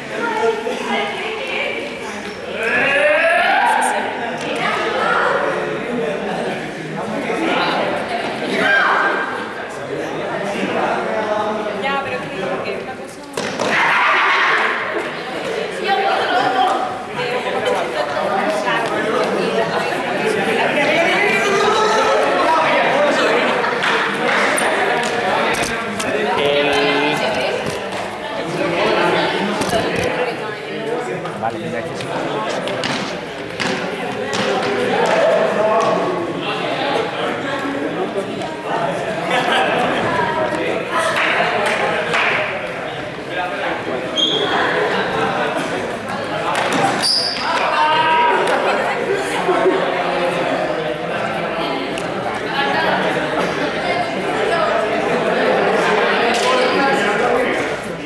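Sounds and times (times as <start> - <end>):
players' voices echoing: 0.0 - 58.0
young people chattering: 0.0 - 58.0
sneakers squeaking on gym floor: 44.1 - 44.6, 46.9 - 47.6.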